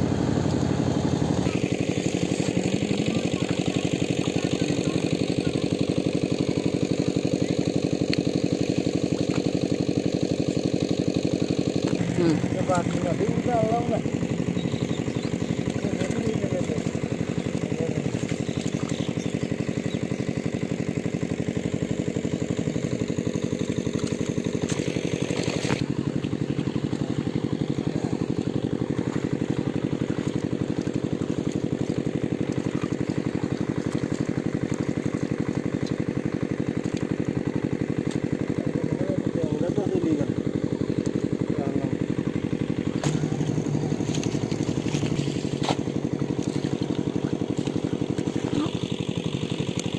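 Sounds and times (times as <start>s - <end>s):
small engine running: 0.0s - 49.9s.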